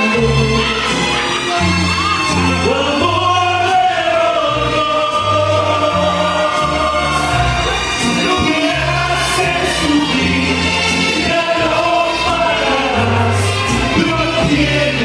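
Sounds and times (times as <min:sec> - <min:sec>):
man singing into a microphone: 0:00.0 - 0:00.9, 0:02.5 - 0:07.4, 0:08.0 - 0:15.0
backing music with bass line: 0:00.0 - 0:15.0.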